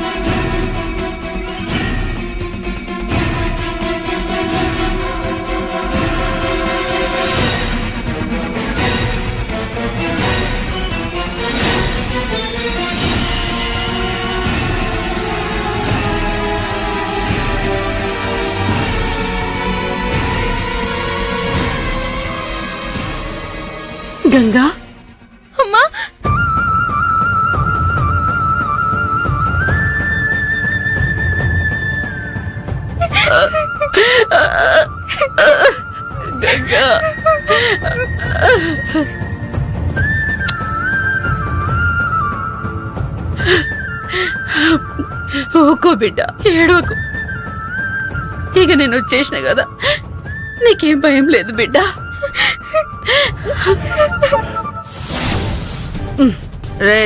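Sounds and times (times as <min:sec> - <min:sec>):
soft background music: 0:00.0 - 0:57.0
person wailing and sobbing: 0:25.6 - 0:26.2, 0:33.0 - 0:39.2, 0:43.4 - 0:45.8, 0:49.7 - 0:50.0, 0:51.5 - 0:54.9
flute-like melody over a drone: 0:26.2 - 0:55.0.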